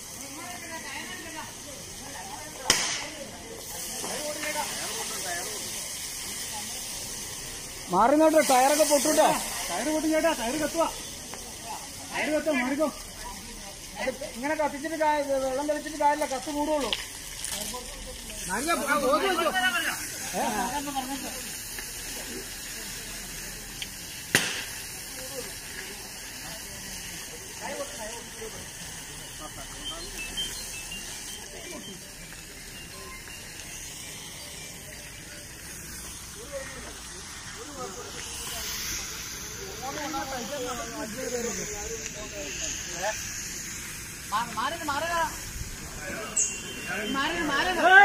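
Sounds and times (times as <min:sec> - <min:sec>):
people's voices: 0:00.0 - 0:48.0
steady hiss: 0:00.0 - 0:48.0.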